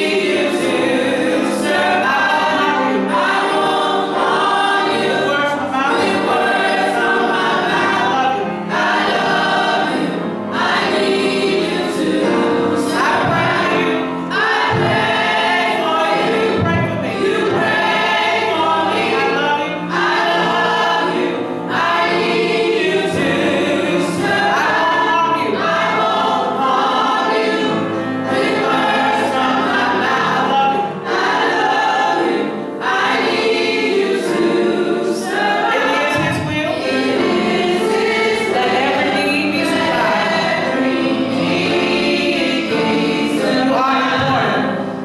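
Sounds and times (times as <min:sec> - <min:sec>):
choir singing gospel song: 0:00.0 - 0:45.0.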